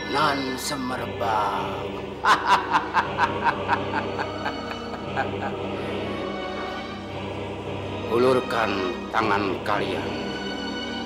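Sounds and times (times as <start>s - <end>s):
old man snickering laugh: 2.2s - 5.6s.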